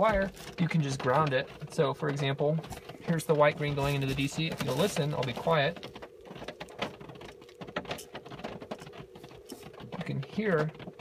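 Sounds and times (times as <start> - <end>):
electrical clicks and crackles: 0.0 - 11.0
steady electrical hum: 0.0 - 11.0.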